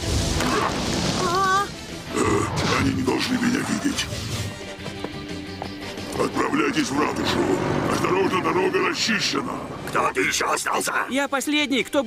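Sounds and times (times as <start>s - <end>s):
quiet background music: 0.1s - 12.0s.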